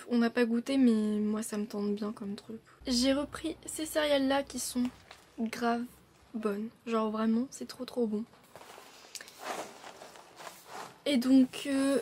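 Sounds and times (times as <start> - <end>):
cereal box rustling: 8.4 - 11.7.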